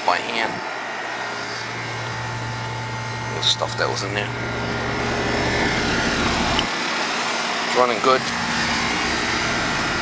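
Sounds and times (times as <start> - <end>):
air conditioner compressor hum: 0.0 - 10.0
condenser fan rushing: 0.0 - 10.0.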